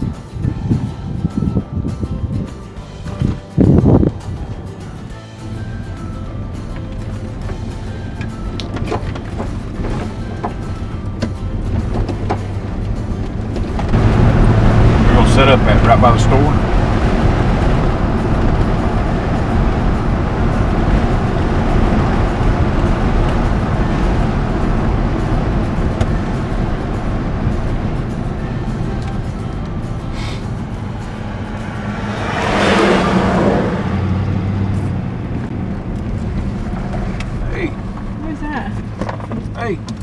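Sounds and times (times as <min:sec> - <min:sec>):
car engine and tyre noise: 0:00.0 - 0:40.0
passing vehicle whoosh: 0:03.0 - 0:40.0.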